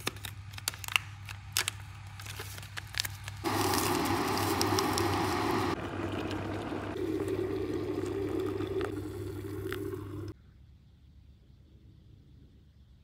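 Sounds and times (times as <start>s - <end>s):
electric kettle humming: 3.4s - 10.4s.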